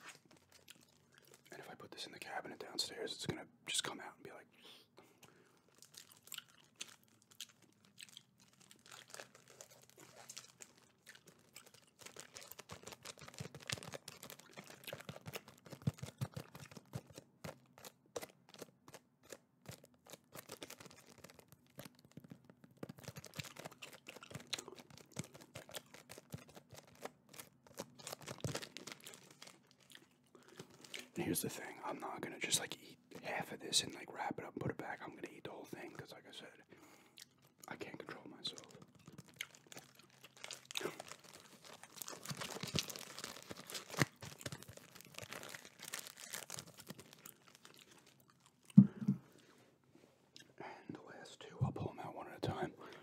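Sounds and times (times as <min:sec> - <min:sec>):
candy wrapper crinkling: 0:00.0 - 0:04.4, 0:05.2 - 0:49.1.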